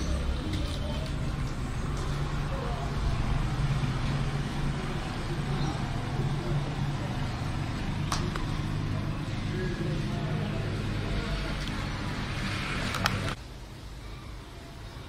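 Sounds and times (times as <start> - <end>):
indistinct voices: 0.0 - 13.4.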